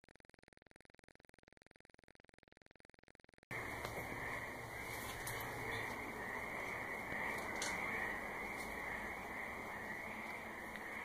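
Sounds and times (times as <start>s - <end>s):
frogs calling: 3.5s - 11.0s.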